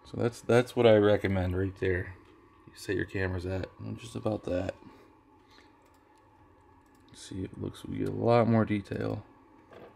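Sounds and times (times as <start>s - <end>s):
computer mouse clicks: 5.8s - 6.2s.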